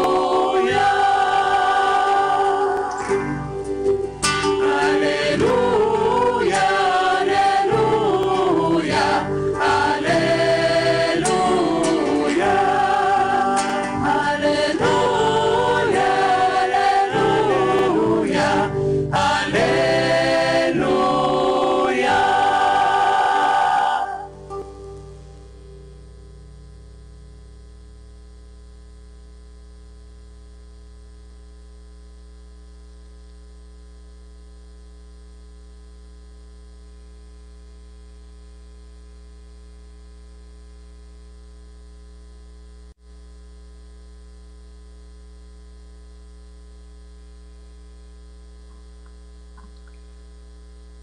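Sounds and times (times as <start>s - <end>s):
electrical mains hum: 0.0s - 51.0s.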